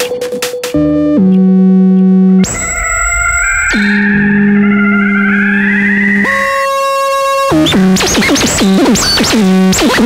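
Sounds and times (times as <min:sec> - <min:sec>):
experimental electronic music: 0:00.0 - 0:10.0.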